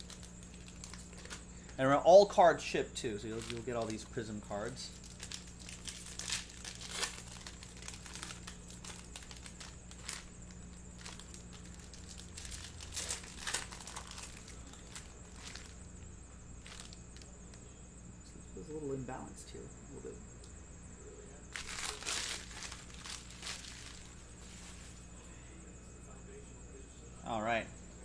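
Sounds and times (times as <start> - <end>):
foil wrappers crinkling and tearing: 0.0 - 1.5, 3.1 - 15.9, 16.6 - 17.3, 21.5 - 25.0.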